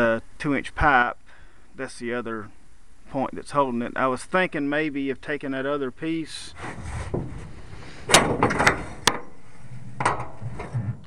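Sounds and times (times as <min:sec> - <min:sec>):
metal pipe knocking and scraping: 0:08.1 - 0:11.0.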